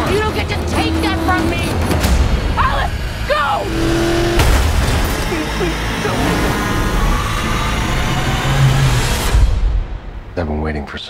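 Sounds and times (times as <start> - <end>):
heavy rumbling noise: 0.2 - 10.2
booming hits: 1.7 - 5.4.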